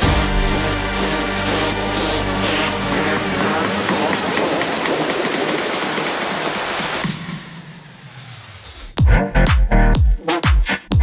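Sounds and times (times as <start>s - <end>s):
loud rushing noise: 0.0s - 9.0s.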